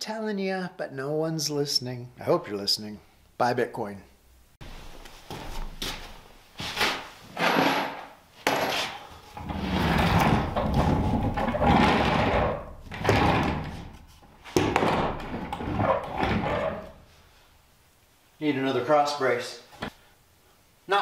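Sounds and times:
dolly rattling on plywood floor: 9.4 - 13.9.

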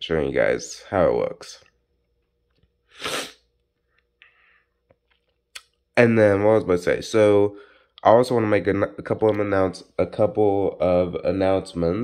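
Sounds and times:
short burst of breath: 2.9 - 3.4.

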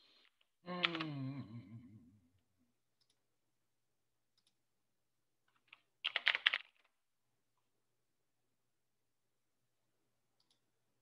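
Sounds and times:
typing on computer keyboard: 5.5 - 6.9.

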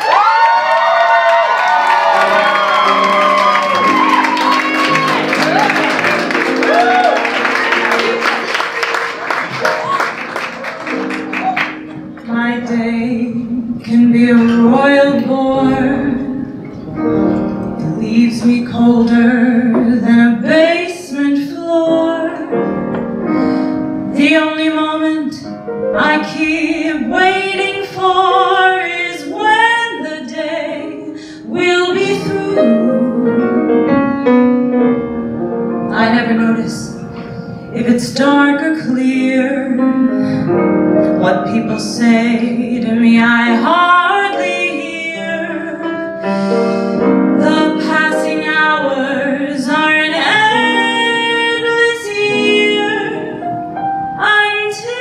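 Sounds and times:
audience applause and cheering: 0.0 - 12.3
grand piano chords: 0.0 - 55.0
woman singing into a microphone: 12.2 - 16.6, 17.8 - 22.7, 23.3 - 34.2, 35.9 - 53.5, 54.2 - 55.0.

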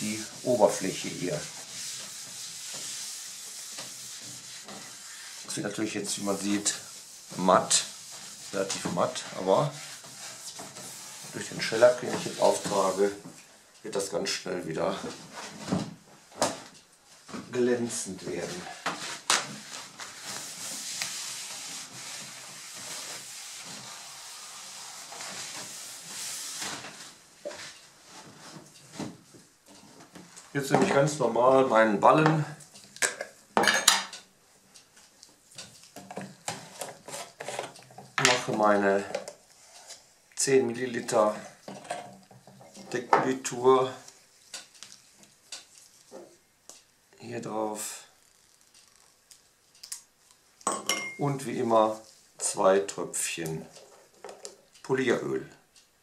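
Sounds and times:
pad scrubbing wood finish: 0.0 - 13.2, 18.5 - 26.7
glass jar clink: 50.7 - 51.2.

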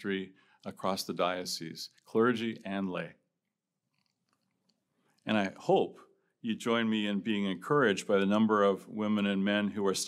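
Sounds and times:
man speaking: 0.0 - 3.3, 5.2 - 10.0
faint small clicks: 3.9 - 5.3.

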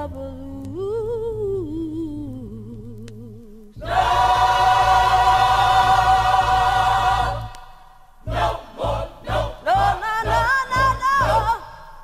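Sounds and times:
choir holding a chord: 3.8 - 11.9.

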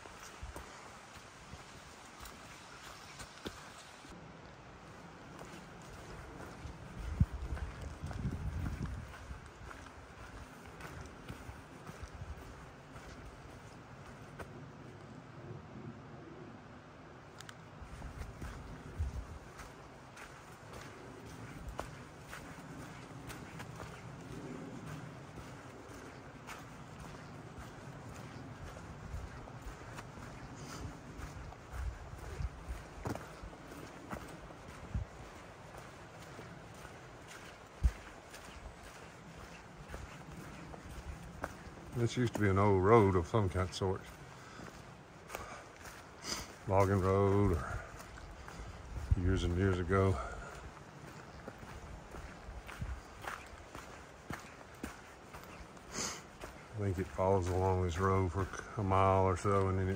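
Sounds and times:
footsteps on dry leaves: 0.0 - 14.7, 17.8 - 59.9.

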